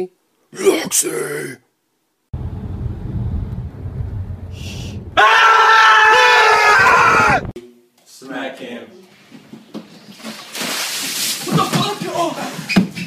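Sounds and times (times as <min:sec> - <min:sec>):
road rumble inside car: 0:02.4 - 0:05.2.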